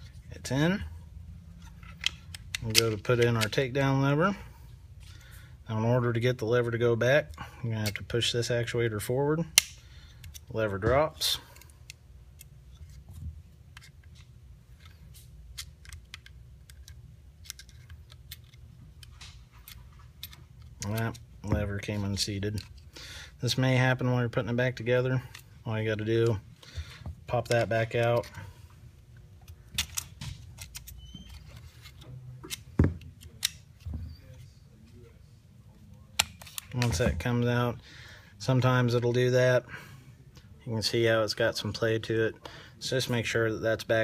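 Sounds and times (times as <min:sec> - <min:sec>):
pistol parts clicking and tapping: 0:01.6 - 0:03.6, 0:09.5 - 0:10.5, 0:13.7 - 0:21.9, 0:29.1 - 0:31.3
parts knocking on mat: 0:32.8 - 0:33.0.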